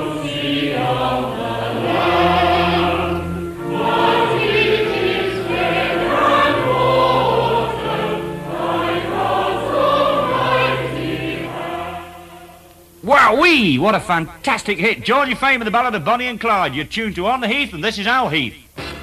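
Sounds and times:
choir singing sustained chords: 0.0 - 14.8.

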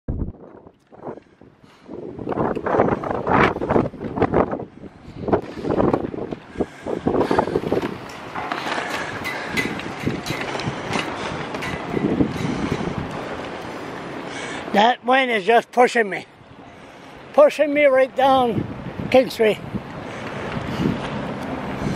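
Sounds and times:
wind buffeting microphone: 0.1 - 14.8, 16.2 - 21.9.

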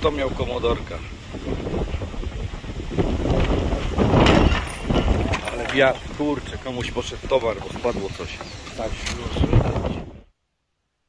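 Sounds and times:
wind buffeting microphone: 0.0 - 10.3.

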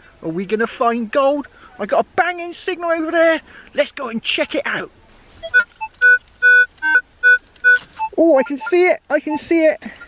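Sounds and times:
metal detector beeps: 5.4 - 10.0.

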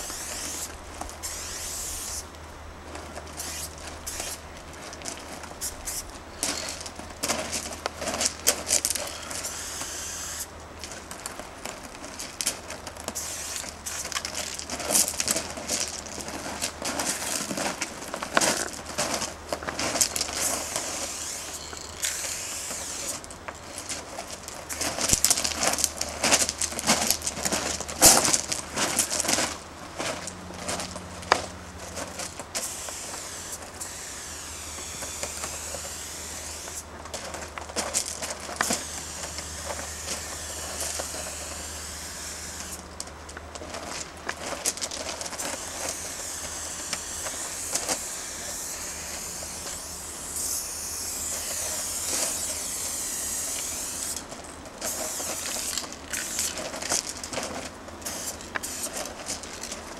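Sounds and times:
spray paint hissing: 0.0 - 2.3, 3.4 - 4.5, 5.5 - 6.8, 8.2 - 10.5, 13.1 - 15.3, 20.1 - 23.2, 32.5 - 36.9, 37.8 - 42.8, 45.3 - 54.3, 54.9 - 56.7, 58.0 - 59.1
spray can rattling: 54.9 - 59.8.

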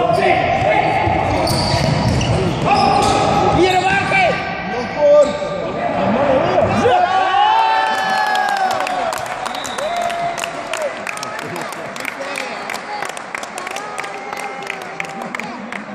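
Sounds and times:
shoes squeaking on hardwood floor: 1.3 - 3.1.

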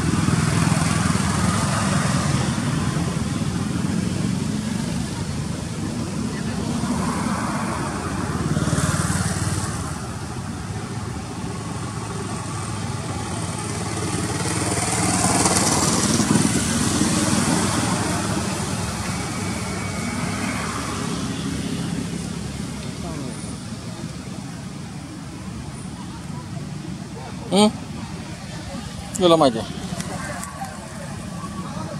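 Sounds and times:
vehicles passing: 0.0 - 31.9.

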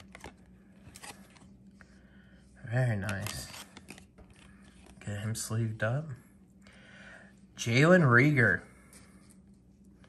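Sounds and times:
cards flicking and rustling: 0.0 - 1.6, 3.0 - 5.0.

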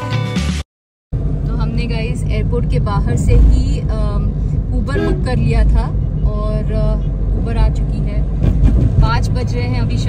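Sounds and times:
car road and engine rumble: 1.1 - 10.0
person talking: 4.8 - 6.9.

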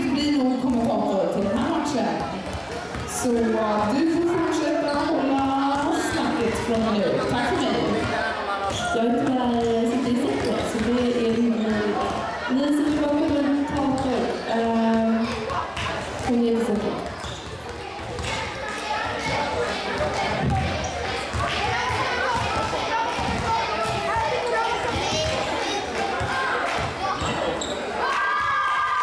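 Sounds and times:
basketballs bouncing on floor: 0.0 - 27.7
people talking: 0.0 - 28.2.

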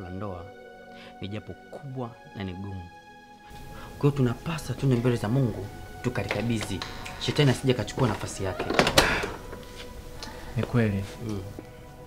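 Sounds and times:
man speaking: 4.0 - 8.7.

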